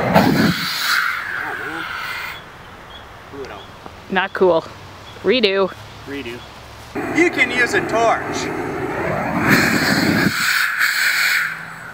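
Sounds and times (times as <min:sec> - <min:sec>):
torch flame roaring: 0:07.0 - 0:10.7.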